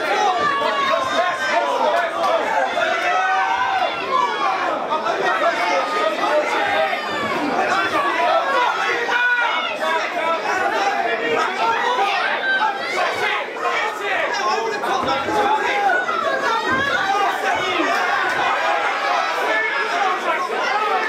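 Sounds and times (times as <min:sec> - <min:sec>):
crowd shouting and talking: 0:00.0 - 0:21.0.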